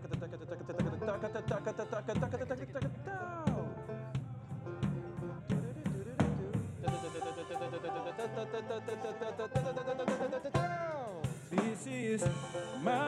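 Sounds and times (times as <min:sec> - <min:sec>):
drum kit with snare and rimshots: 0:00.0 - 0:13.0
picked banjo notes: 0:00.0 - 0:13.0.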